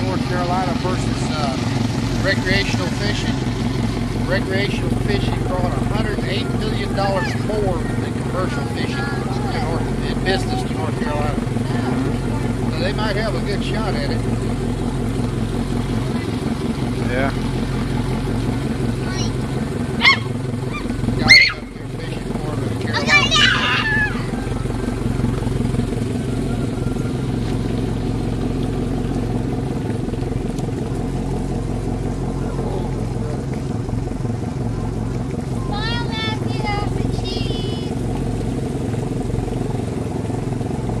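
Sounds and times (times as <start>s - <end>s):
engine idling hum: 0.0s - 41.0s
young child shouting and whining: 22.9s - 24.4s.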